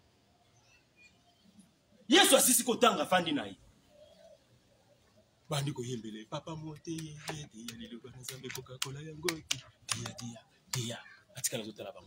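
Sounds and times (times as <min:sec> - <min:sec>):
man preaching: 0:02.1 - 0:03.6, 0:05.5 - 0:12.0.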